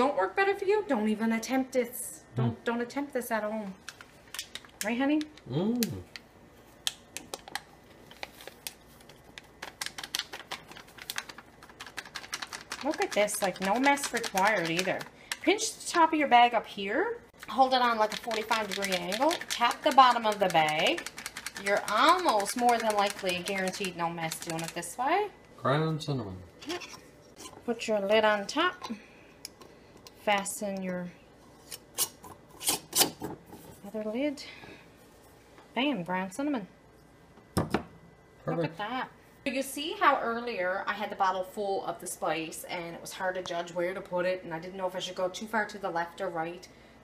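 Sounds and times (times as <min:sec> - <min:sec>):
plastic bag crinkling: 0:07.9 - 0:13.0.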